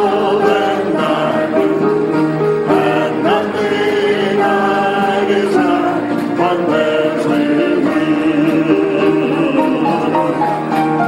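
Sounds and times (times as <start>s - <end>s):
choir singing gospel song: 0.0s - 11.0s.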